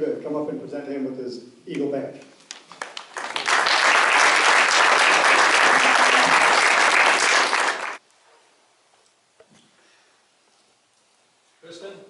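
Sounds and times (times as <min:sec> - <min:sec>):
audience applauding: 0:02.6 - 0:08.0.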